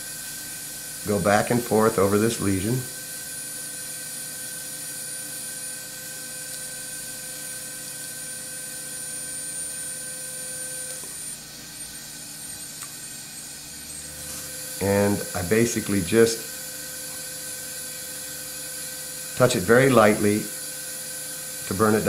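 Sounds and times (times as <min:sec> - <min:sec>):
smoke evacuator hissing: 0:14.1 - 0:20.6.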